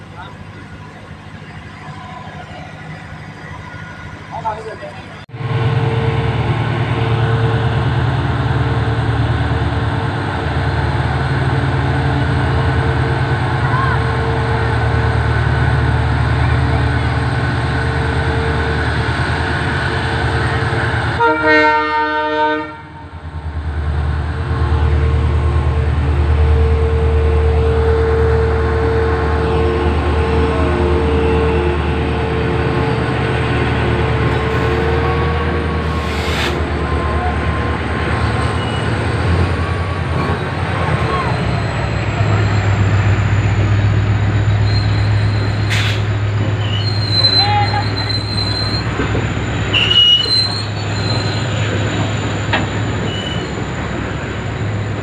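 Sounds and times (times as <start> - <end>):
freight train rumbling on track: 0.0 - 55.0
locomotive horn: 21.1 - 23.1, 26.0 - 36.0, 46.6 - 48.7, 49.7 - 51.2.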